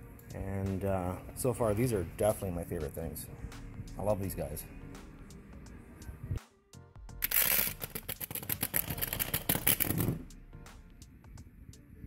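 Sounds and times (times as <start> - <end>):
background music: 0.0 - 12.0
packing paper crackling: 7.2 - 10.1.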